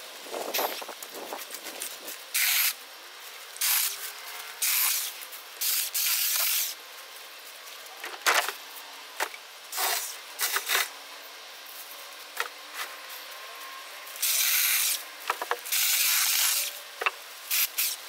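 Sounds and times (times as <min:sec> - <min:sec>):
shrub branches rustling: 0:00.0 - 0:18.0.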